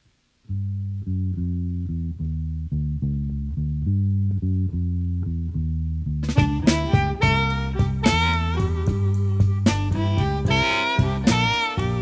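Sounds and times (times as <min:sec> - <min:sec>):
electric bass blues riff: 0:00.5 - 0:12.0.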